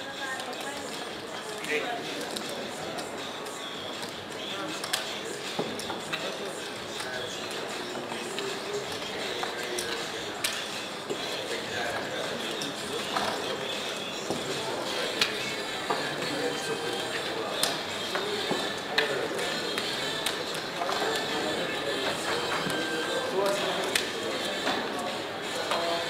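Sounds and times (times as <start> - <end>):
chatter of voices: 0.0 - 26.0.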